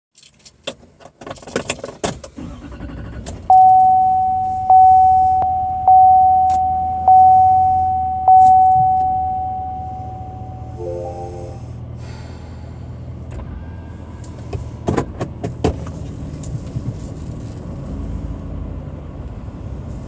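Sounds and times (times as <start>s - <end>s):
low engine hum: 2.4s - 20.0s
car warning chime: 3.5s - 11.8s.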